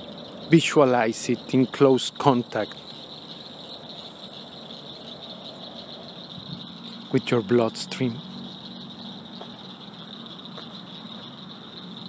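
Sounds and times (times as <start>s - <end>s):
insect chorus chirring: 0.0s - 12.0s.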